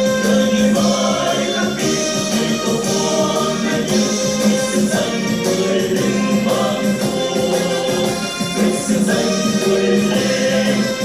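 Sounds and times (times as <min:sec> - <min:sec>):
choir singing with band: 0:00.0 - 0:11.0.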